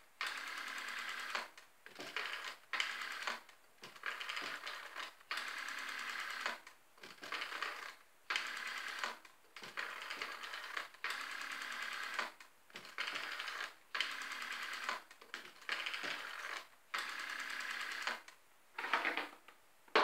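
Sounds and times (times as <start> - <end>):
rotary telephone dial whirring clicks: 0.2 - 18.4.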